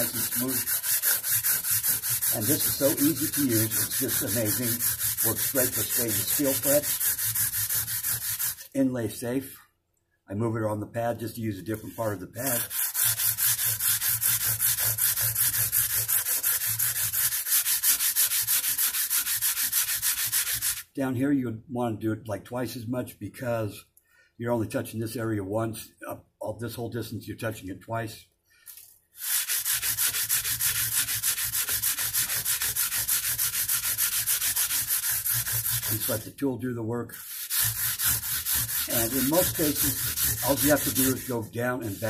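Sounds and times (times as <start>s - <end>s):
abrasive paper rasping on frets: 0.0s - 8.7s, 11.8s - 20.8s, 29.2s - 36.2s, 37.2s - 42.0s.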